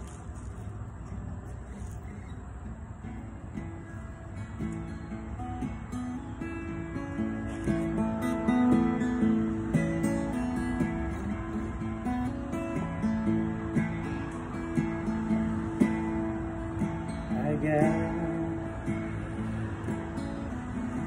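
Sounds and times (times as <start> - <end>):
acoustic guitar playing blues: 1.0 - 21.0.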